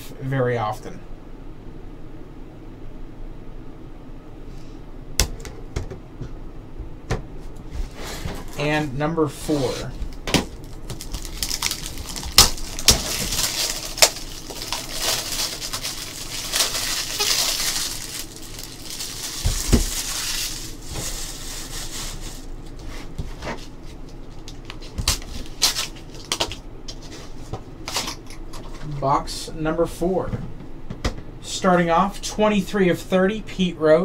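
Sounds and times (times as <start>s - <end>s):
plastic wrapper crinkling: 10.1s - 22.5s.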